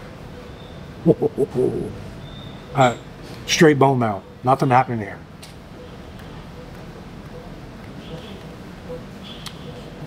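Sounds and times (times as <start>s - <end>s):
low hum: 1.0s - 3.2s.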